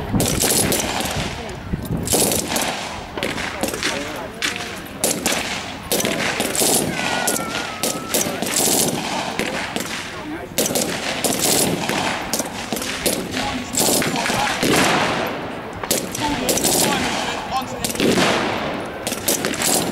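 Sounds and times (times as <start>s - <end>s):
rifle shots: 0.0s - 19.9s.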